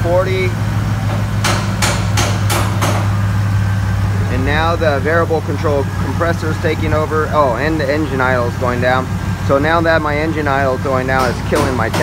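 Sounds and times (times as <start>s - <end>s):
car engine idling: 0.0s - 12.0s
sharp knocks: 1.0s - 3.4s, 11.1s - 12.0s.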